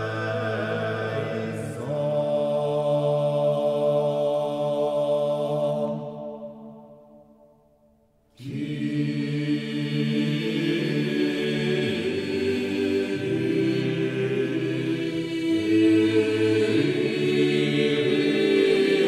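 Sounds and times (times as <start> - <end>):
vocal ensemble singing: 0.0 - 7.0, 8.4 - 19.0.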